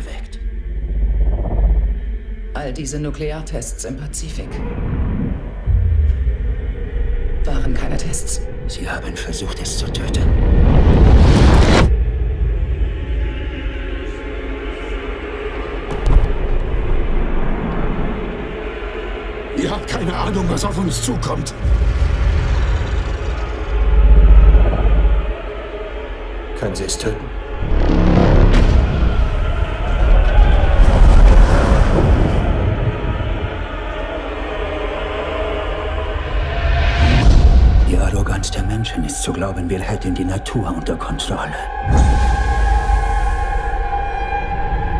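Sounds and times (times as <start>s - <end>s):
deep low rumble: 0.0s - 2.7s, 4.2s - 14.9s, 19.7s - 25.8s, 27.4s - 34.6s.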